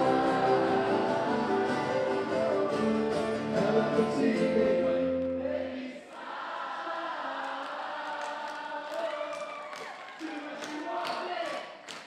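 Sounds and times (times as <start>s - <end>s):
acoustic guitars: 0.0s - 5.5s
crowd singing together: 0.0s - 9.1s.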